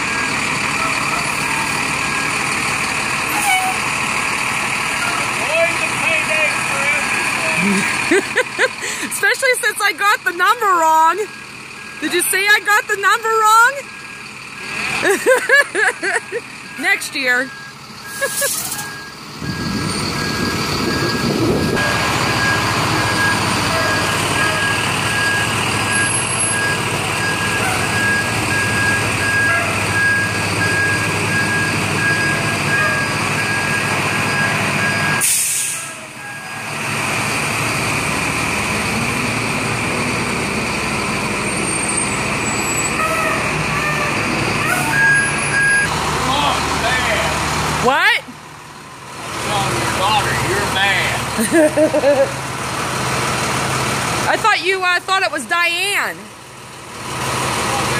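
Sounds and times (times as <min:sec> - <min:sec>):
reversing alarm beeping: 0:00.0 - 0:03.8, 0:10.0 - 0:38.1, 0:41.5 - 0:46.0
bus engine running: 0:00.0 - 0:57.9.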